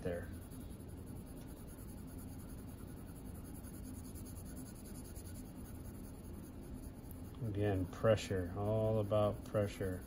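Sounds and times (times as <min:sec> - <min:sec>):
faint hum: 0:00.0 - 0:10.0
pencil scratching on paper: 0:00.0 - 0:10.0.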